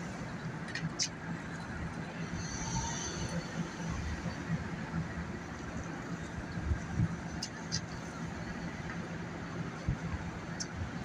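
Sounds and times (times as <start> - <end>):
cars driving past: 0.0 - 11.0
steady engine hum: 0.0 - 11.0.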